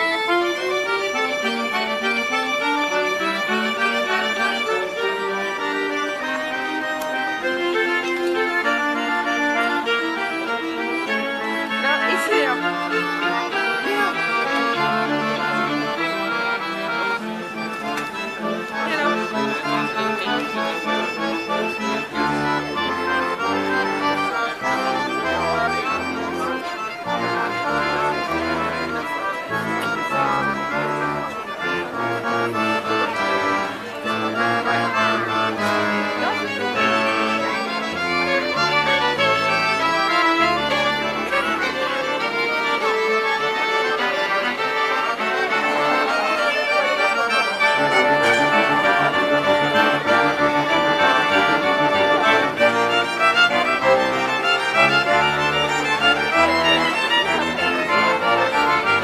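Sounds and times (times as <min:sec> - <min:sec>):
accordions: 0:00.0 - 0:59.0
tuba and bass balalaika: 0:00.0 - 0:59.0
violin: 0:00.0 - 0:59.0.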